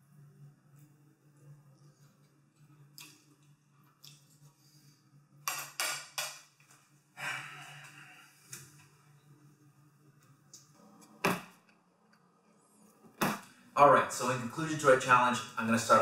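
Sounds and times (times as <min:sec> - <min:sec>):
steady low hum: 0:06.5 - 0:16.0.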